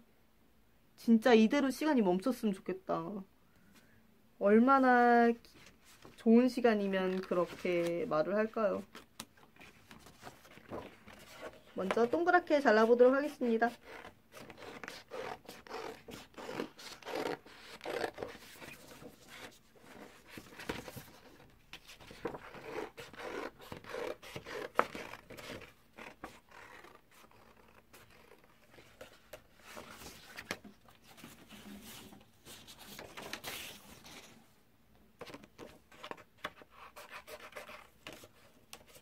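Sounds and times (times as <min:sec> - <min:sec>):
paper rustling: 0:08.9 - 0:12.2, 0:18.0 - 0:34.4.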